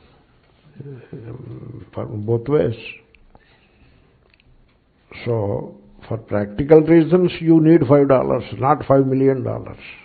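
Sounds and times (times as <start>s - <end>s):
man murmuring hesitantly: 0.7s - 2.3s
man speaking: 0.7s - 3.1s, 5.1s - 10.0s.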